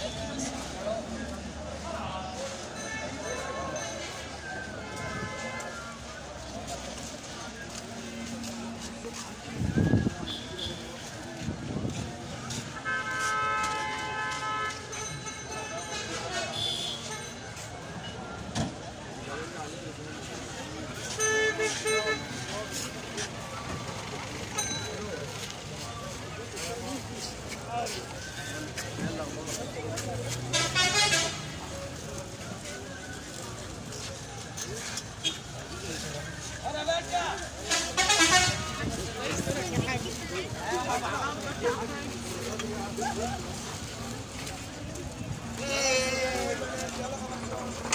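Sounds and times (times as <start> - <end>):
crowd chatter: 0.0 - 47.9
passing traffic: 0.0 - 47.9
people talking and calling out: 0.0 - 47.9
vehicle horn toots: 12.8 - 14.8, 16.4 - 17.3, 37.7 - 38.9.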